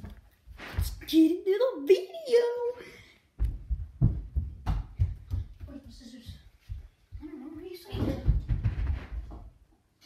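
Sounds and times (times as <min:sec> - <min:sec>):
rustling: 0:00.0 - 0:01.1.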